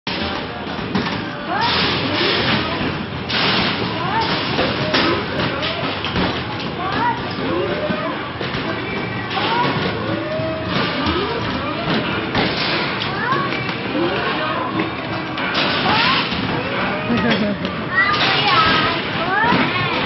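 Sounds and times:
people's voices: 0.2 - 20.0.

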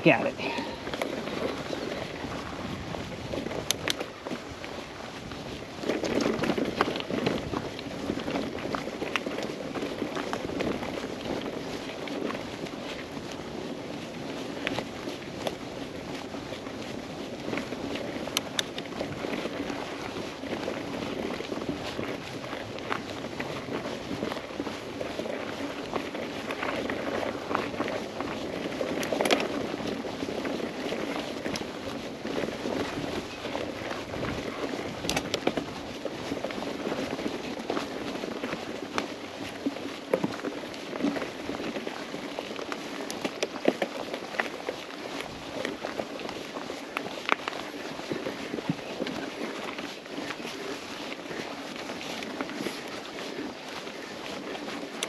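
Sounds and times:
bike tyres rolling over dirt: 0.0 - 55.0
bike clicks and rattles: 0.8 - 55.0.

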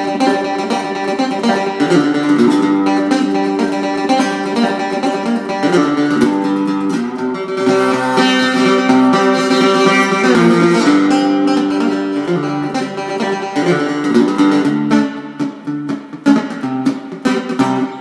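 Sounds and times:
guitar plucked and strummed: 0.0 - 18.0.

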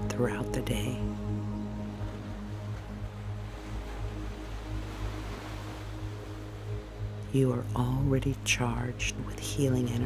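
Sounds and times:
low drone music: 0.0 - 10.0
ocean surf: 0.0 - 10.0.

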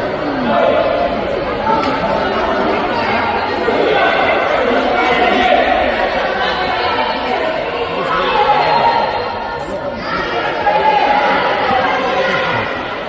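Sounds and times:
many voices chattering: 0.0 - 13.0.

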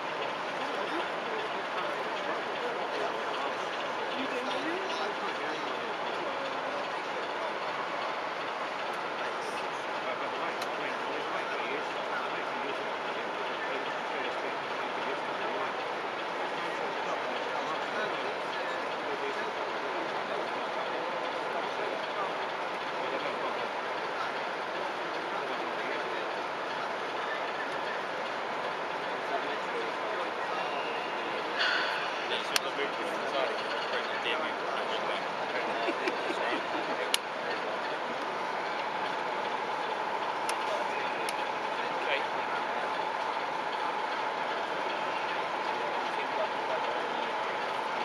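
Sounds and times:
babble of many voices: 0.0 - 48.0
hall background noise: 0.0 - 48.0
model train running on track: 0.0 - 48.0.

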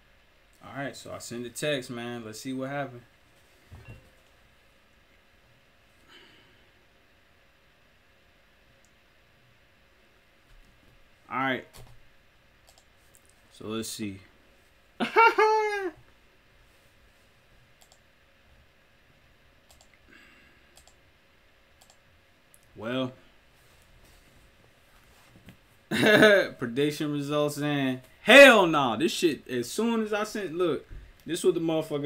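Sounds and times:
faint clicks: 12.6 - 13.4, 20.8 - 21.0, 21.8 - 22.7.

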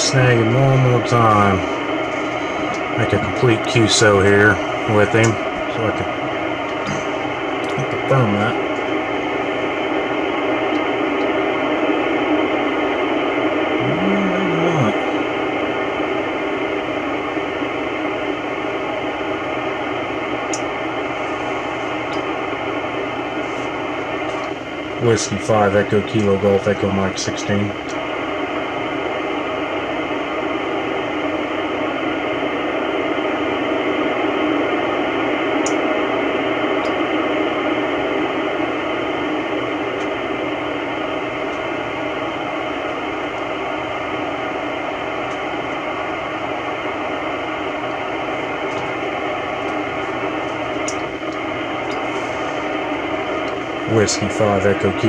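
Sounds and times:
radio static hiss: 0.0 - 55.0.

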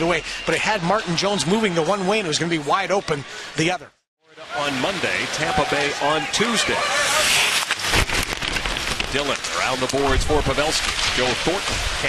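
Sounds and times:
arena crowd noise: 0.0 - 7.8
skate blades scraping ice: 6.7 - 12.0.

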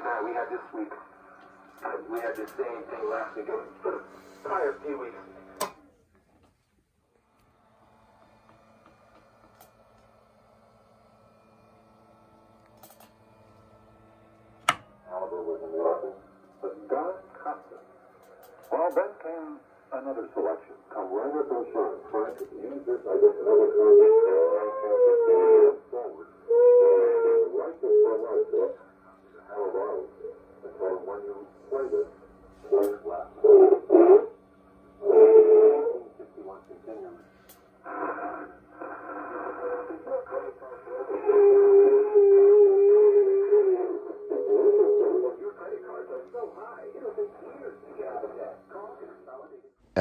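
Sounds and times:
tinny radio speech and music: 0.0 - 1.2, 1.8 - 5.4, 15.0 - 17.8, 18.4 - 24.6, 27.5 - 33.9, 38.8 - 41.4, 43.6 - 49.6
faint steady hum: 0.0 - 50.0.

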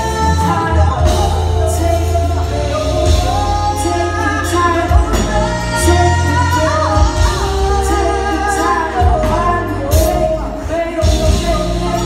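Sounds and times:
held bass notes: 0.0 - 12.0
woman singing: 0.0 - 12.0.

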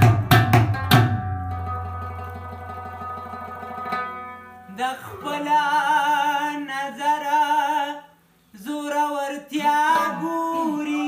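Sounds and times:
plucked strings ringing: 1.1 - 4.8.

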